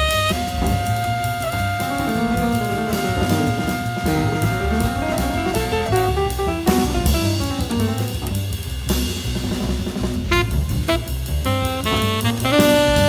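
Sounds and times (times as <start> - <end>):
drum kit with cymbals: 0.0 - 13.0
plucked bass line: 0.3 - 13.0.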